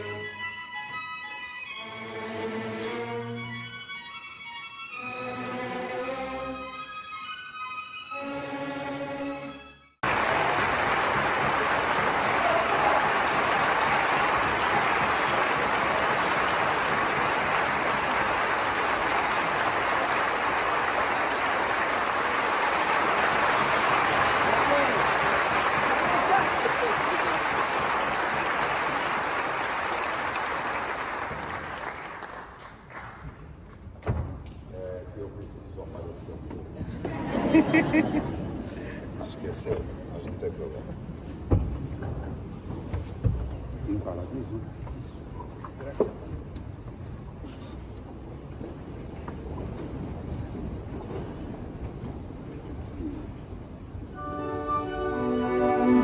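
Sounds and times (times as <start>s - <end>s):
violin music: 0.0s - 10.0s, 54.1s - 56.0s
audience applause: 10.0s - 33.4s.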